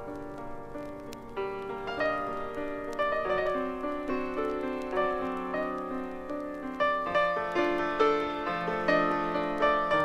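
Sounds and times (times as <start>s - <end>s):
gentle piano music: 0.0s - 10.0s.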